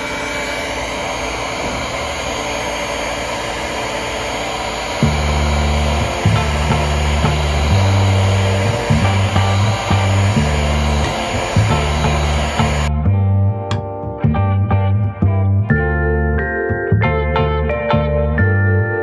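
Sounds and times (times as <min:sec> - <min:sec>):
heat gun blowing: 0:00.0 - 0:12.9
music with plucked bass line: 0:05.0 - 0:19.0.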